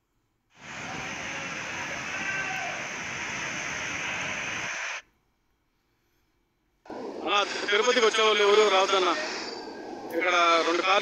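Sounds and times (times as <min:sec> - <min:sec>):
floodwater rushing: 0:00.6 - 0:05.0.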